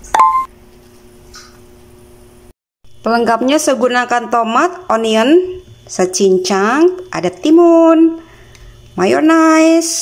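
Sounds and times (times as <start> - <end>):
short electronic beep: 0.1 - 0.5.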